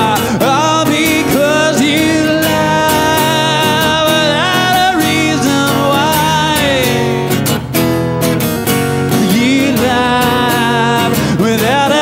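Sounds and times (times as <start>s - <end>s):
person singing: 0.0s - 7.4s, 9.0s - 12.0s
acoustic guitar strummed: 0.0s - 12.0s.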